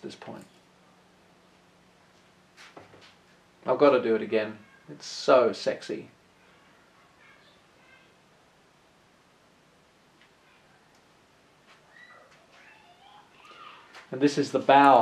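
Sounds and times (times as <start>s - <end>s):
faint high chirps: 11.8s - 13.9s.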